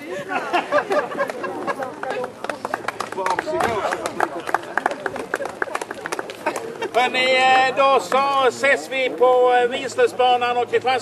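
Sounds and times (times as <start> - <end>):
voices: 0.0 - 11.0
audience clapping: 0.9 - 7.4.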